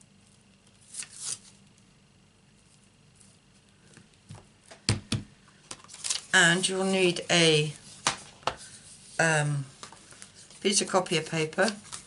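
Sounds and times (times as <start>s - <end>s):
soft rustle: 2.6s - 4.1s.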